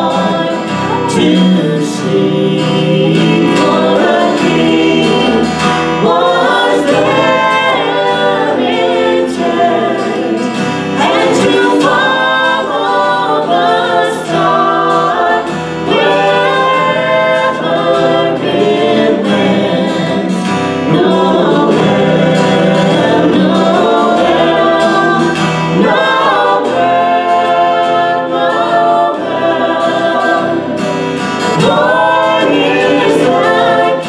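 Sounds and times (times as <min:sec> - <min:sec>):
acoustic guitar and band: 0:00.0 - 0:34.0
people singing: 0:00.0 - 0:34.0.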